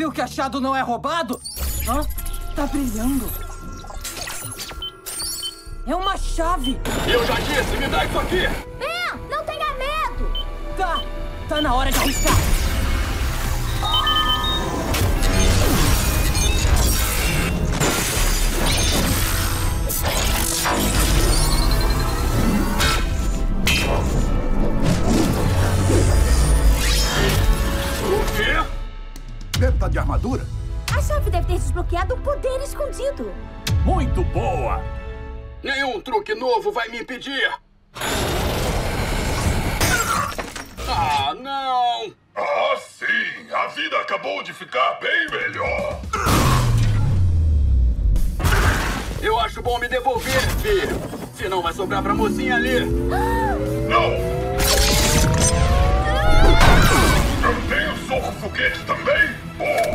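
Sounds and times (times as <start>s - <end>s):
loud dramatic music: 5.7s - 36.1s, 45.7s - 59.9s.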